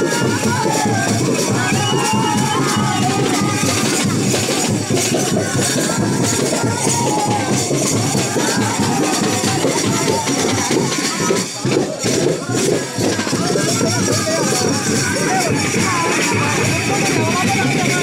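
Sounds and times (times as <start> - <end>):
crowd voices: 0.0 - 18.0
frame drums drumming: 0.0 - 18.0.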